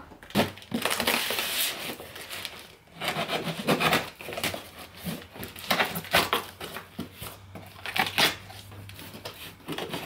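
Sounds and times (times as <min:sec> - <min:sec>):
cardboard and paper rustling: 0:00.2 - 0:10.0
packing tape tearing off box: 0:00.2 - 0:10.0.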